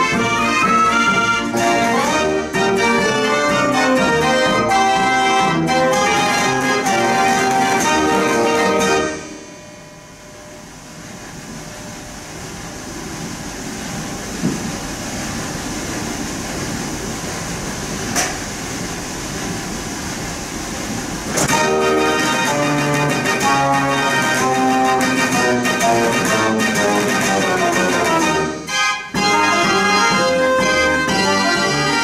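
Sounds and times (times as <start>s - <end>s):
dance organ music: 0.0s - 9.9s, 21.5s - 32.0s.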